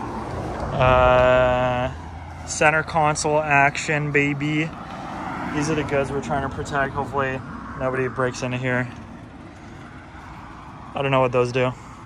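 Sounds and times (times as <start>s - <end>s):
low outdoor rumble: 0.5s - 4.7s.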